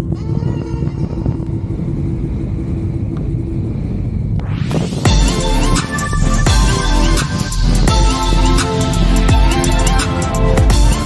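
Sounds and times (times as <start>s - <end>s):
wind rumbling on microphone: 0.0s - 6.6s.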